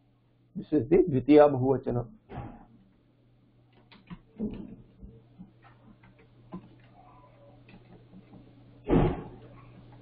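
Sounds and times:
low electrical hum: 0:00.0 - 0:10.0
keyboard typing clicks: 0:03.7 - 0:04.3
loud knock: 0:08.9 - 0:09.4.

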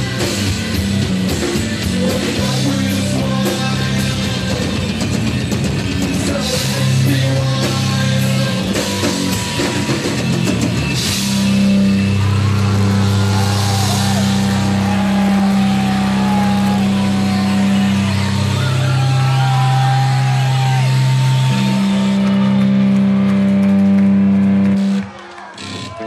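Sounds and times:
wavering high lead guitar line: 0:00.0 - 0:25.0
rock band holding distorted chords: 0:00.0 - 0:26.0.

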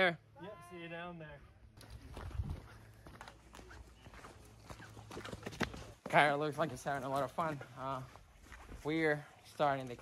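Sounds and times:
dog paws scuffing on dirt: 0:01.8 - 0:10.0.

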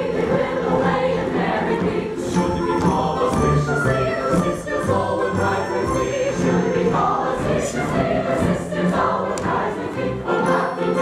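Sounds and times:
chorus singing: 0:00.0 - 0:11.0
orchestra playing: 0:00.0 - 0:11.0.

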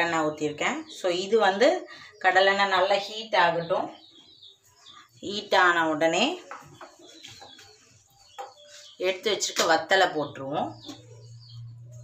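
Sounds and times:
woman's voice: 0:00.0 - 0:04.0, 0:05.2 - 0:06.5, 0:09.0 - 0:11.0.

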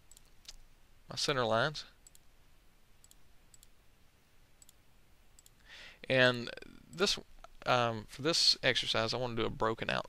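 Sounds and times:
computer mouse clicks: 0:00.0 - 0:00.6, 0:02.0 - 0:02.3, 0:03.0 - 0:03.8, 0:04.6 - 0:04.8, 0:05.4 - 0:05.6.

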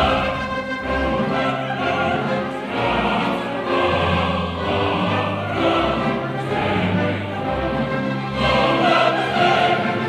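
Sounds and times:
opera chorus singing: 0:00.0 - 0:10.0
orchestra playing: 0:00.0 - 0:10.0.

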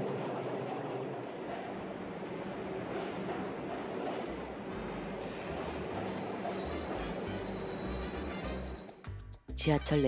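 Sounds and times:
subway train pulling into station: 0:00.0 - 0:09.1.

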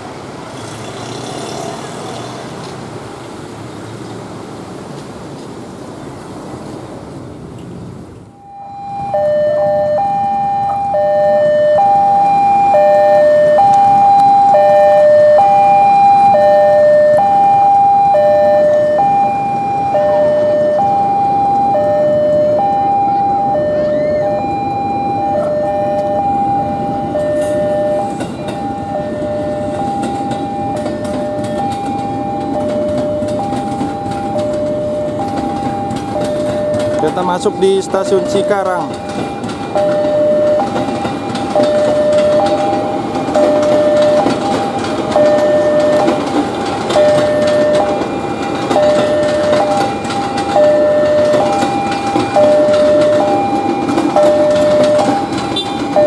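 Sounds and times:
electric train rumbling: 0:00.0 - 0:56.0
two-tone railway warning alarm: 0:08.3 - 0:56.0
wheel clicks on rail joints: 0:28.2 - 0:56.0.

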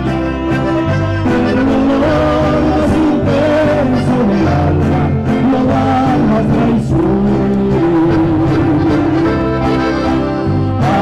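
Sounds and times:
live band music: 0:00.0 - 0:11.0
steady bass line: 0:00.0 - 0:11.0.

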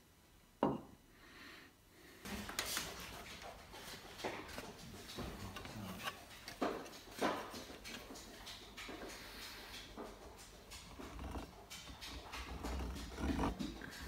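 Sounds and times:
hand tools handled on bench: 0:04.5 - 0:08.2, 0:10.1 - 0:14.0.

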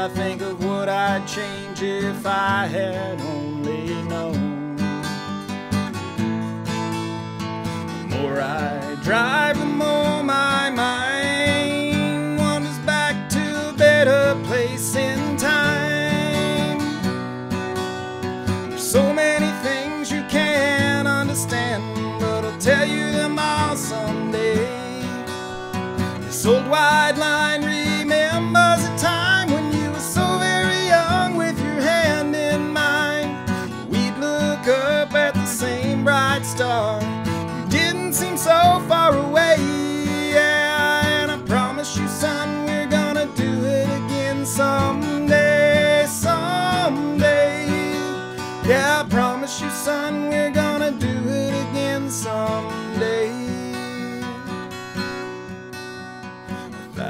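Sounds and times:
man singing country song: 0:00.0 - 0:57.0
strummed acoustic guitar: 0:00.0 - 0:57.0.

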